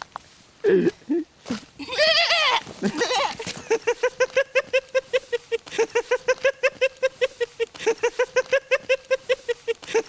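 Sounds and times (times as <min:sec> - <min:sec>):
man's bleat-like cry: 0:01.8 - 0:03.4
rapid rhythmic laughter: 0:02.8 - 0:10.0.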